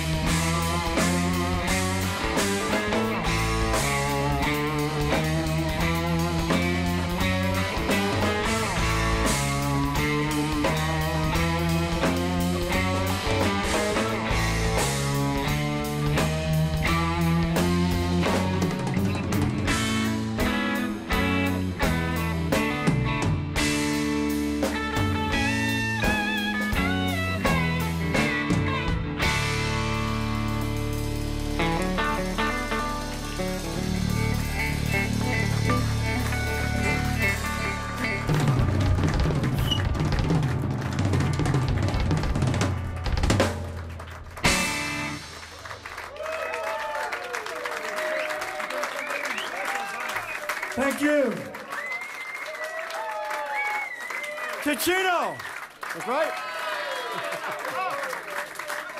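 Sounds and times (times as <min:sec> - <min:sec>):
electric guitar picked notes: 0:00.0 - 0:45.5
drum kit: 0:00.0 - 0:47.0.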